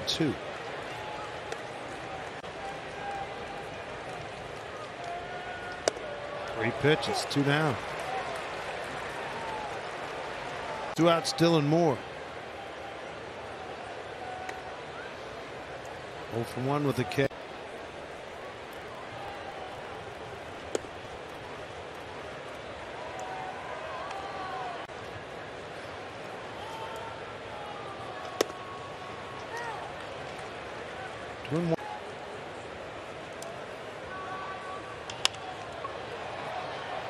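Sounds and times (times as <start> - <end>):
bat hitting ball: 20.6 - 21.0.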